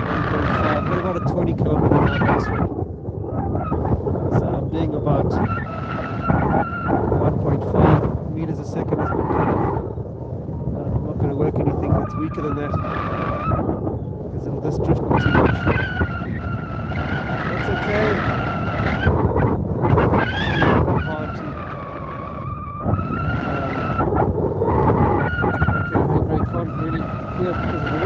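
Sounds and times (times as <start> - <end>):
wind buffeting microphone: 0.0 - 28.0
variometer wavering tone: 15.1 - 28.0.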